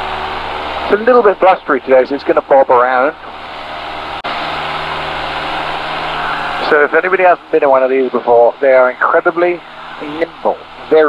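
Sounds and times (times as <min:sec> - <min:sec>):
propeller plane engine droning: 0:00.0 - 0:11.0.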